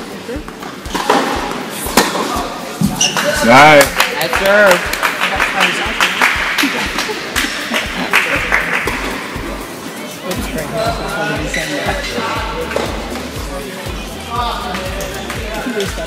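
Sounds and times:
background music with low beat: 0.0 - 3.9, 4.6 - 16.0
voices: 0.0 - 16.0.

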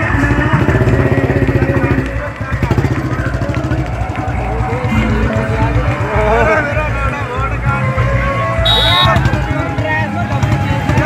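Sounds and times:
motorcycle engine idling: 0.0 - 7.9, 8.6 - 11.0
voices: 0.0 - 11.0.

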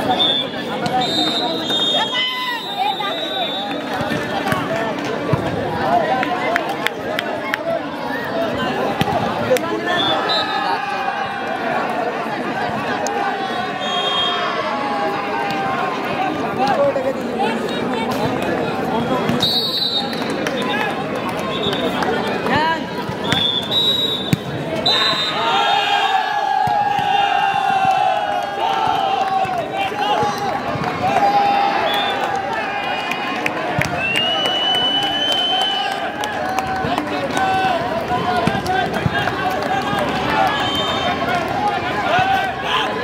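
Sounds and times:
spectators shouting and talking: 0.0 - 43.0.

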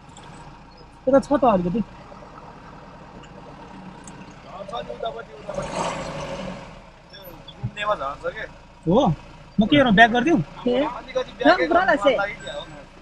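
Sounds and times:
pickup engine running: 0.0 - 13.0.

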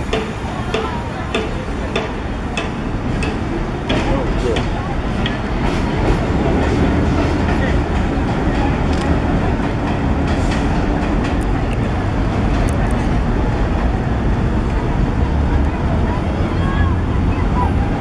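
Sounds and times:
rail clicks: 0.0 - 16.1
train wheels rumbling on rail: 0.0 - 18.0.

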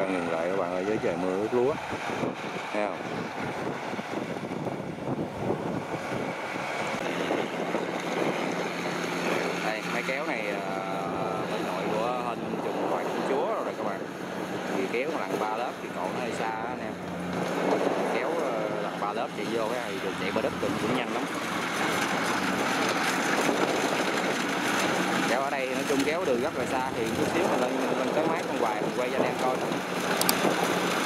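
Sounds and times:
combine harvester engine running: 0.0 - 31.0
wind on microphone: 0.0 - 31.0
indistinct voices: 17.7 - 22.9.

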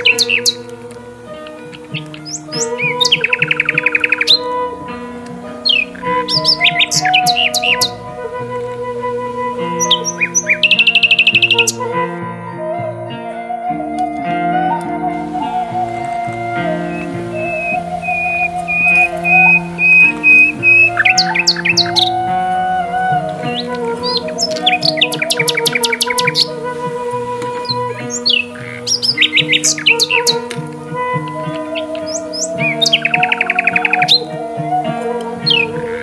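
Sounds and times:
birds chirping: 0.0 - 36.0
soft instrumental music: 0.0 - 36.0.

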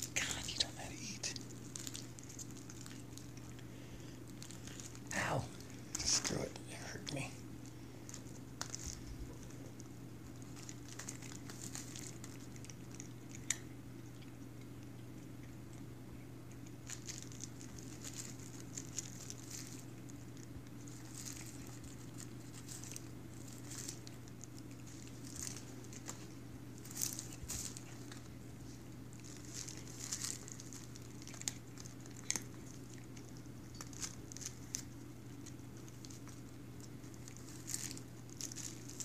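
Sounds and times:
cat chewing kibble clicks: 9.8 - 26.3, 29.2 - 38.9.

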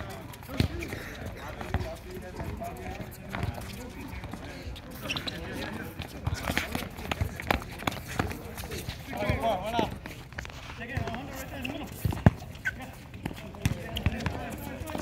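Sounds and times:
running footsteps: 0.3 - 15.0
ball kicked and bouncing: 5.2 - 15.0.

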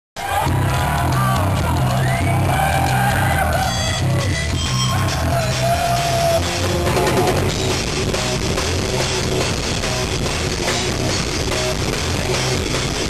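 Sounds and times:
drums: 0.2 - 13.0
heavy bass line: 0.2 - 13.0
rap-metal band playing live: 0.2 - 13.0.

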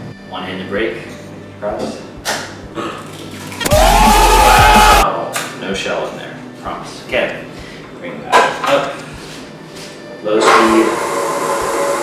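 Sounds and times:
loud yelling cheer: 3.7 - 5.0.

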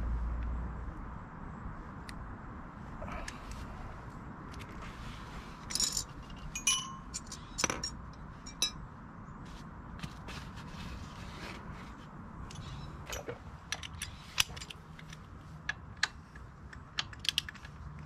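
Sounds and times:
metal tools clinking: 5.6 - 8.8, 12.4 - 14.8.

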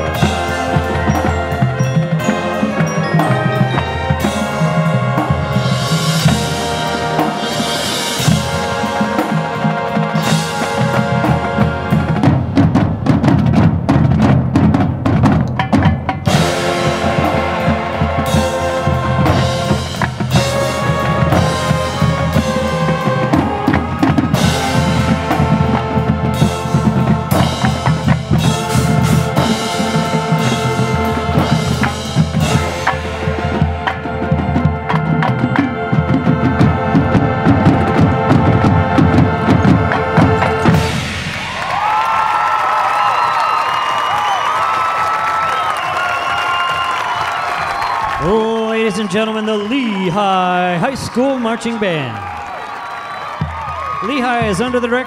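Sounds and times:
brass holding chords: 0.0 - 12.7, 16.3 - 41.1
marching drum line: 0.0 - 55.0.

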